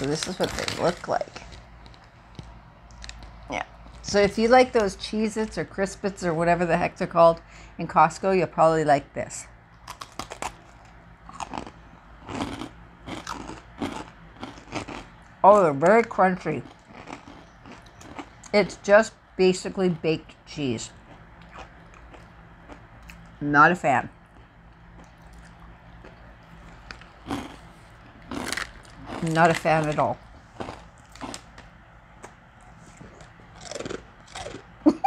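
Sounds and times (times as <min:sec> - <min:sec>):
crunchy crisps being chewed: 0:00.0 - 0:04.0, 0:09.8 - 0:15.1, 0:16.5 - 0:18.6, 0:20.9 - 0:23.4, 0:24.3 - 0:31.6, 0:32.2 - 0:34.8
low steady hum: 0:00.0 - 0:35.0.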